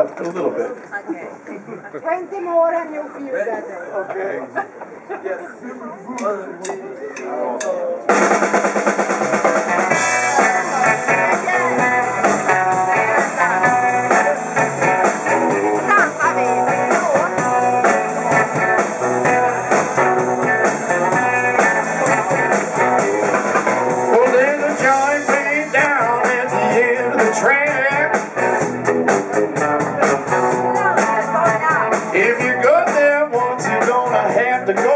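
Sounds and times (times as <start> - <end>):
drum kit steady beat: 8.1 - 34.9
electric bass: 8.1 - 34.9
electric guitars: 8.1 - 34.9.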